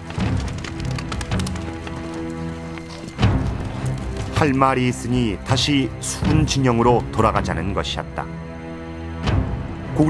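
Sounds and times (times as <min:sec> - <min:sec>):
horse hoofbeats galloping: 0:00.0 - 0:04.8
background music with held notes: 0:00.0 - 0:10.0.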